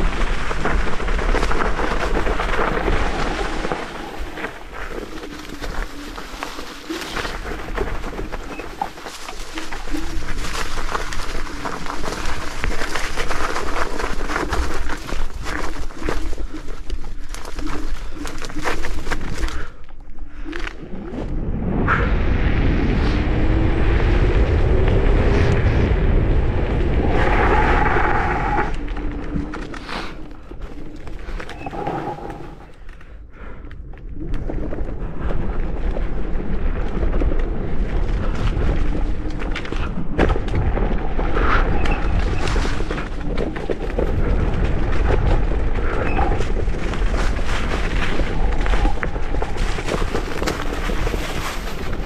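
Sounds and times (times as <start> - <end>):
tyre noise on rough ground: 0.0 - 21.4, 33.8 - 52.0
wind rumble on microphone: 0.0 - 52.0.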